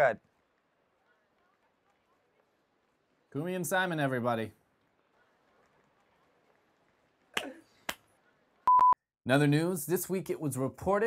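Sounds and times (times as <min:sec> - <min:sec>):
electronic beep: 0:08.7 - 0:09.0.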